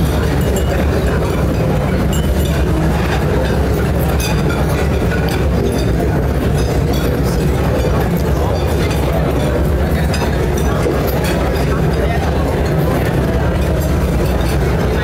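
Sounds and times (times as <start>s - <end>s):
clinks and clatter: 0.0s - 15.0s
murmur of many voices: 0.0s - 15.0s
steady low hum: 0.0s - 15.0s.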